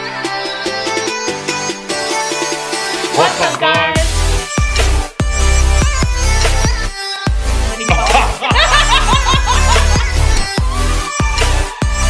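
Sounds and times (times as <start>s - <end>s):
electronic music with heavy beat: 0.0s - 12.0s
man and woman laughing: 7.8s - 10.4s.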